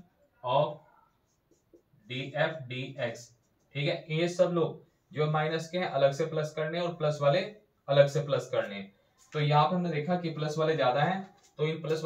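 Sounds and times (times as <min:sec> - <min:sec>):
man speaking: 0:00.0 - 0:01.0, 0:02.0 - 0:12.0
marker pen writing on whiteboard: 0:00.8 - 0:04.5.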